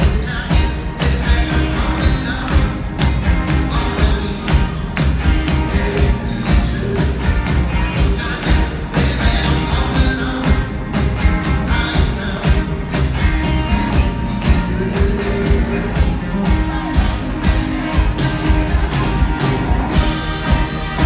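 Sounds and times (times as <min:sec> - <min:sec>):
bass guitar: 0:00.0 - 0:21.0
drums keeping a beat: 0:00.0 - 0:21.0
electric guitar: 0:00.0 - 0:21.0.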